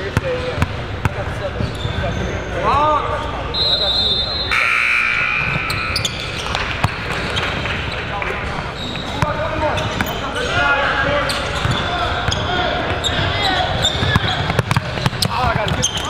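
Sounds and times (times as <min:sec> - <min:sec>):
crowd chatter echoing: 0:00.0 - 0:16.0
basketball bouncing on gym floor: 0:05.6 - 0:07.7, 0:13.9 - 0:16.0.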